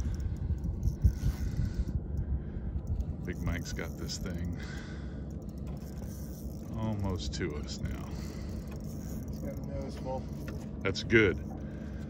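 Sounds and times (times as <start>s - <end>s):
wind buffeting microphone: 0.0s - 10.8s.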